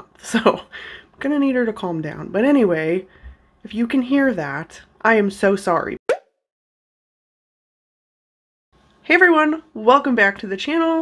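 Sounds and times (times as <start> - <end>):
short pop with rising blip: 6.1 - 6.4.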